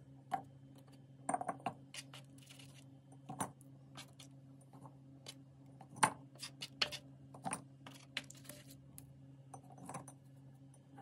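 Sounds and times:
faint low hum: 0:00.0 - 0:11.0.

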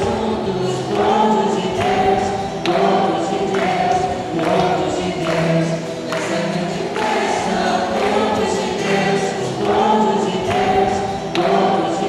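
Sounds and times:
congregation singing a hymn: 0:00.0 - 0:12.0
hand claps: 0:00.9 - 0:12.0.

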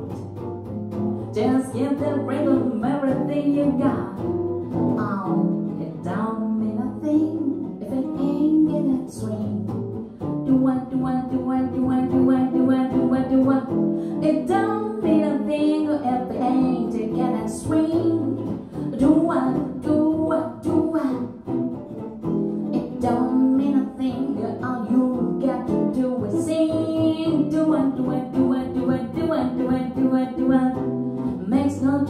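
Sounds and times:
electric guitar swing rhythm: 0:00.0 - 0:32.0
woman singing jazz: 0:01.3 - 0:21.6, 0:22.7 - 0:32.0.

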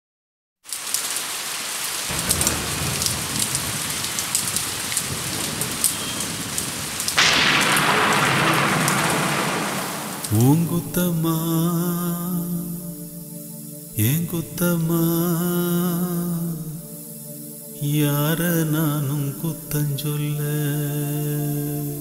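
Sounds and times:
rain with drips: 0:00.6 - 0:11.5
thunderclap: 0:02.1 - 0:11.1
low thunder rumble: 0:02.1 - 0:11.5.

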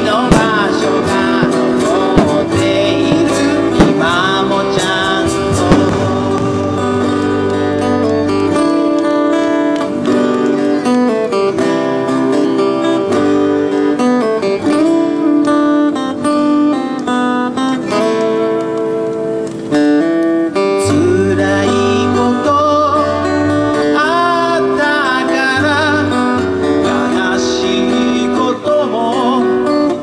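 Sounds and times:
person singing: 0:00.0 - 0:08.6, 0:20.8 - 0:30.0
acoustic guitars strummed: 0:00.0 - 0:30.0.

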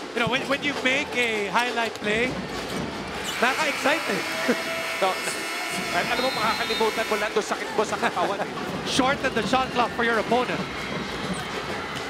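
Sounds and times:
broadcast commentary: 0:00.0 - 0:02.4, 0:03.2 - 0:10.7
arena crowd noise: 0:00.0 - 0:12.0.

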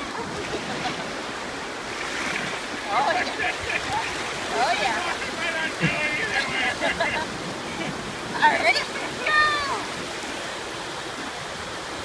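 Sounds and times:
small sea waves at shoreline: 0:00.0 - 0:12.0.

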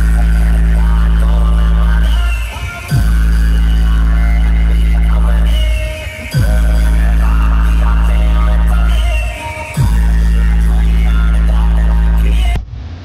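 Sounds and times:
deep electronic bass through speakers: 0:00.0 - 0:12.8.

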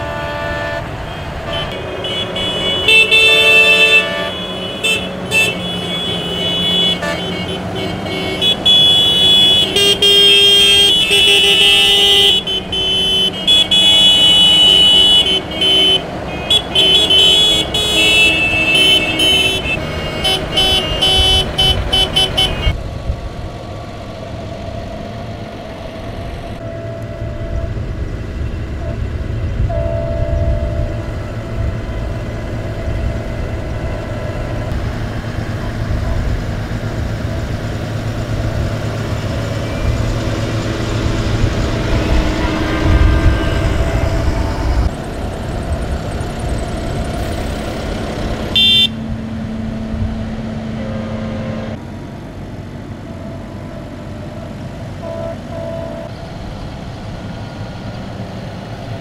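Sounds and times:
horns honking: 0:00.0 - 0:22.8, 0:26.6 - 0:51.8, 0:53.0 - 0:56.2
tractor diesel engines running: 0:00.0 - 0:59.0.

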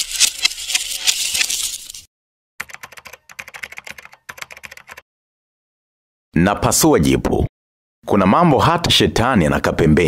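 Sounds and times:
keyboard typing: 0:02.6 - 0:05.0.

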